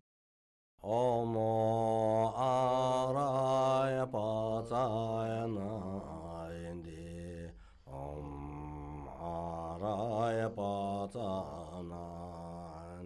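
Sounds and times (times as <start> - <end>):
deep voice chanting mantra: 0.8 - 13.0.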